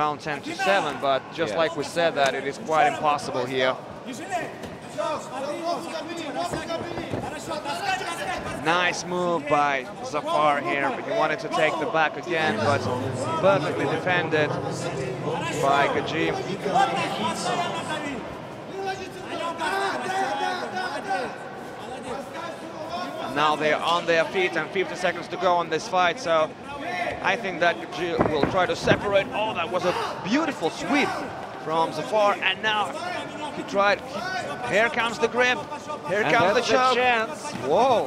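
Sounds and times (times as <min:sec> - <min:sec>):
men shouting and talking: 0:00.0 - 0:38.0
soft knocks: 0:06.5 - 0:07.4.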